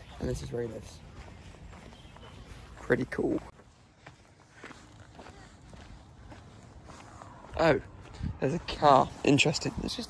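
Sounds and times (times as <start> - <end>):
footsteps on paved road: 0.0 - 10.0.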